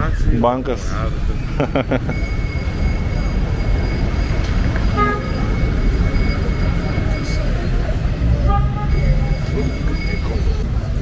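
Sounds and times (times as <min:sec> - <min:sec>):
thin steady high tone: 0:01.3 - 0:11.0
vehicle horn toot: 0:04.8 - 0:05.7, 0:08.4 - 0:09.4.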